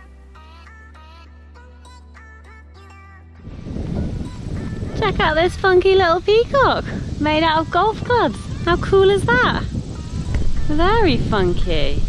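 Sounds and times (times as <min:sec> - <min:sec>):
background music: 0:00.0 - 0:12.0
wind buffeting microphone: 0:03.4 - 0:12.0.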